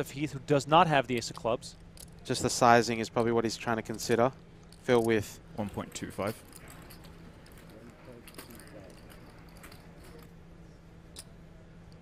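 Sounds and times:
low hum: 0:00.0 - 0:12.0
distant murmuring voices: 0:02.3 - 0:11.8.

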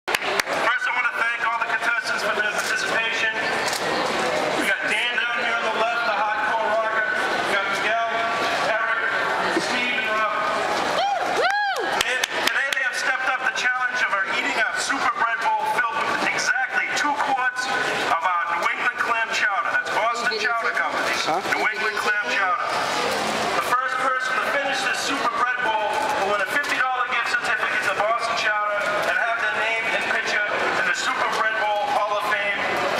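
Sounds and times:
crowd chatter: 0:00.0 - 0:32.9
man speaking through a megaphone: 0:00.6 - 0:03.6, 0:04.6 - 0:10.7, 0:12.0 - 0:22.9, 0:23.5 - 0:32.9.

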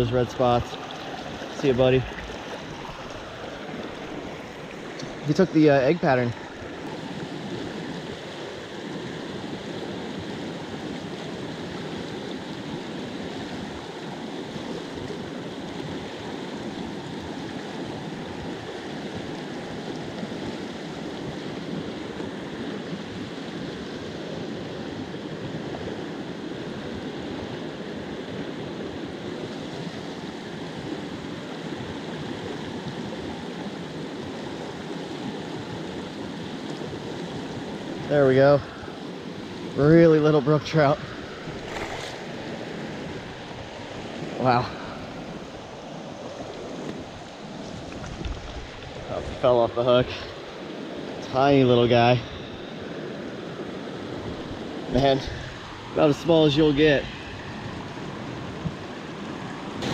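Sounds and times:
stream water rushing: 0:00.0 - 0:59.9.

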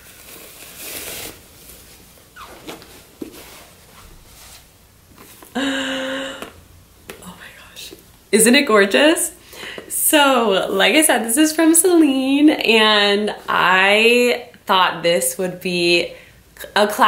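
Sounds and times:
cloth rustling and handling: 0:00.0 - 0:05.6.

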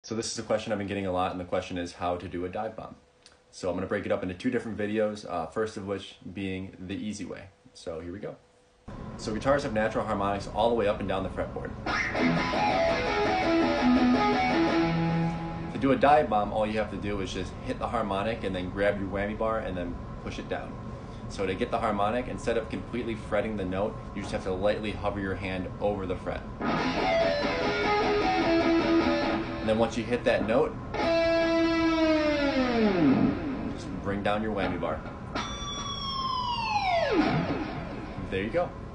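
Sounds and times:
electric guitar run: 0:11.9 - 0:15.8, 0:26.6 - 0:29.7, 0:31.0 - 0:33.8, 0:35.3 - 0:38.2.

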